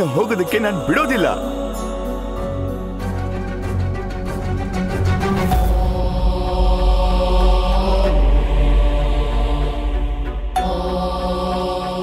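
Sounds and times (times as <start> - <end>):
chant-like vocal drone: 0.0 - 12.0.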